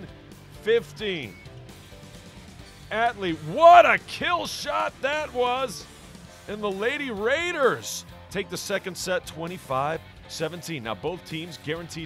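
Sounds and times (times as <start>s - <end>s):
background guitar music: 0.0s - 12.0s.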